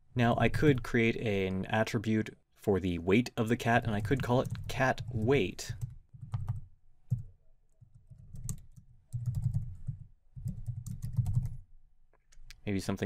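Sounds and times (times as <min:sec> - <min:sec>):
keyboard typing: 0:03.8 - 0:11.6.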